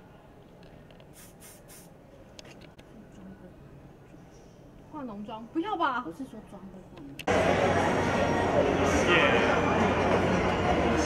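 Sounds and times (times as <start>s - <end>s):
hairspray can spraying: 1.1s - 2.0s.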